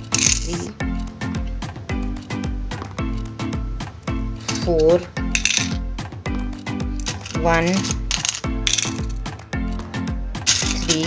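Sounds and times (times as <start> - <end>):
coins clinking: 0.0 - 1.1, 4.3 - 11.0
background music with steady beat: 0.0 - 11.0.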